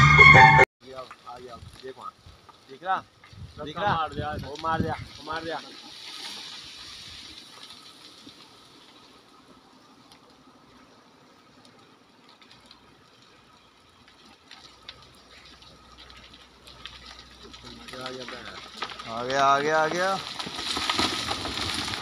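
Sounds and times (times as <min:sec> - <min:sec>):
faint outdoor hiss: 0:00.8 - 0:22.0.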